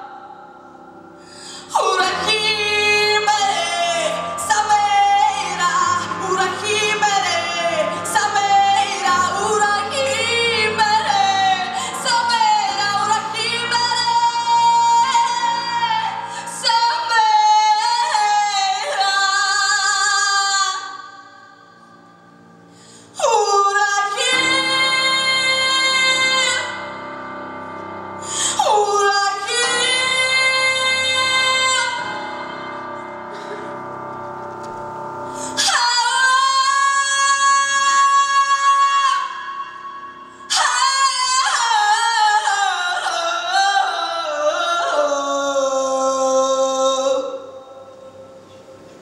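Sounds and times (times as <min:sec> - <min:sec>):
piano accompaniment: 0:00.0 - 0:20.3, 0:21.8 - 0:46.1
woman singing into a microphone: 0:01.4 - 0:21.6, 0:23.1 - 0:27.1, 0:28.2 - 0:32.8, 0:35.4 - 0:48.4.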